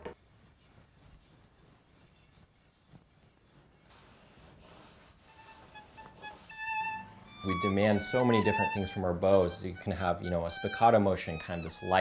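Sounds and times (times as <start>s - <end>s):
bow stick scraping: 0.0s - 12.0s
violin note: 5.4s - 12.0s.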